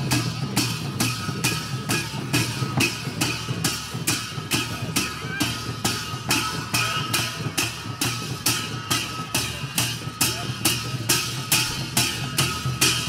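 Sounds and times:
barrel drum beating rhythm: 0.0 - 13.0
ringing brass cymbals: 0.0 - 13.0.

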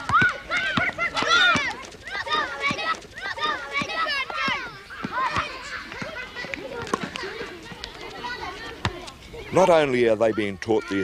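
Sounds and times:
children shouting: 0.0 - 11.0.

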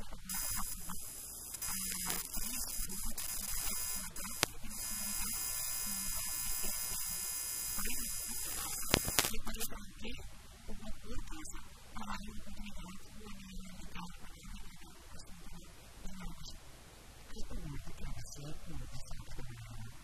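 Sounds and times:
electrical buzz and hiss: 0.0 - 10.1
woman talking: 0.0 - 16.6, 17.3 - 20.0
sharp clicks: 0.3 - 9.7.

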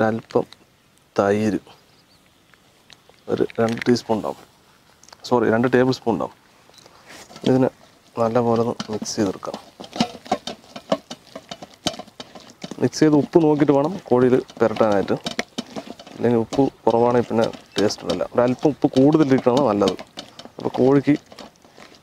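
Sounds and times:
person talking: 3.3 - 4.4, 7.4 - 10.1, 12.7 - 15.3, 16.2 - 20.0, 20.6 - 21.2
hand mixing paste in bowl: 6.9 - 22.0.

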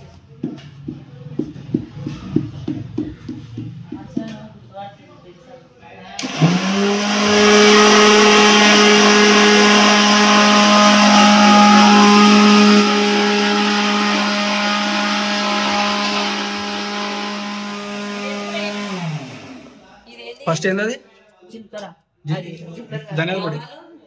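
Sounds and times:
mixer grinder motor whine: 6.2 - 19.9.

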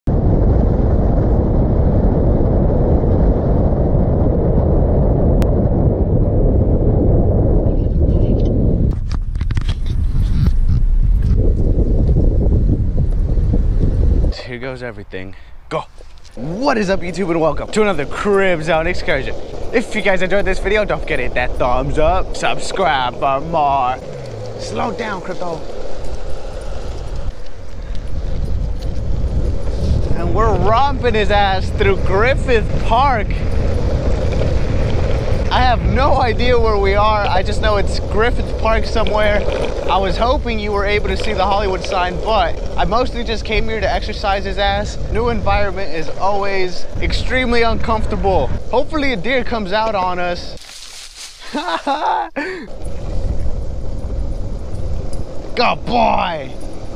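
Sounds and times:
wind rushing over microphone: 0.0 - 56.9
skateboard wheels rolling on asphalt: 0.1 - 56.9
car road noise rumble: 16.0 - 48.8.

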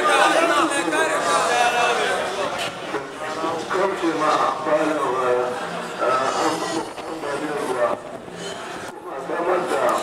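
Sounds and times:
man speaking into microphone: 0.0 - 8.2, 8.9 - 10.0.

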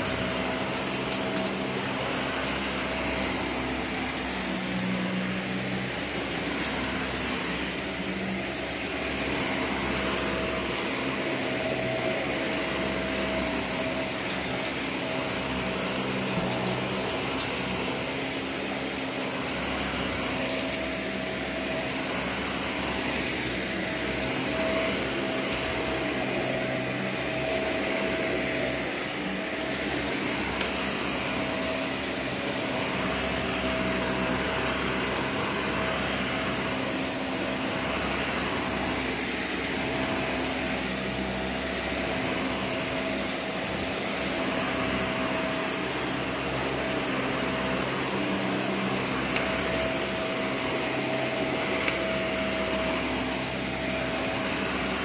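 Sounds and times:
vacuum cleaner running on carpet: 0.0 - 55.0.

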